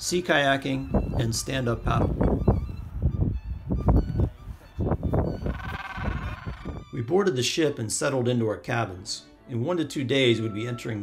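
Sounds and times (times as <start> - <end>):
wind on microphone: 0.8 - 6.9
penguin braying: 5.3 - 6.9.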